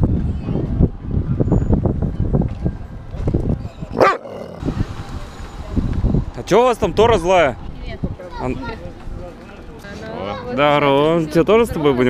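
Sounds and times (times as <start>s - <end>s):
dog barking: 4.0s - 4.4s.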